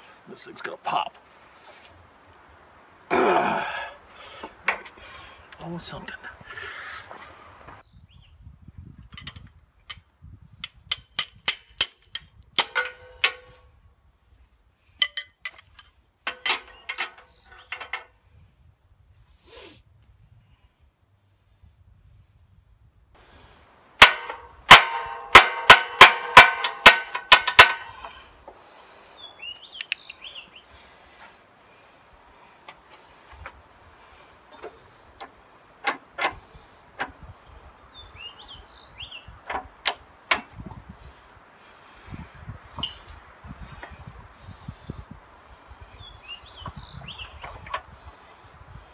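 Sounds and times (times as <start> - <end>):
wrench striking metal: 10.6 - 13.6, 15.0 - 17.9, 24.0 - 28.2
steel coupler clanging on steel frame: 10.9 - 13.6, 15.0 - 18.0, 24.0 - 28.2.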